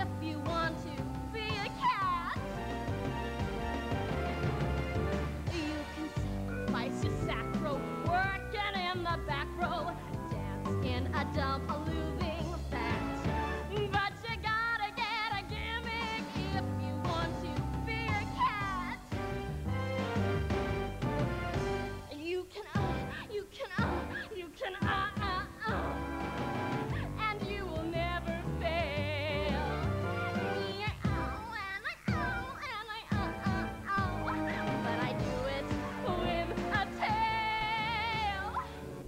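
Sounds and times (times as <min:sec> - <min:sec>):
stage band music: 0:00.0 - 0:22.2, 0:22.8 - 0:39.0
woman singing cat-like cries: 0:22.1 - 0:25.9.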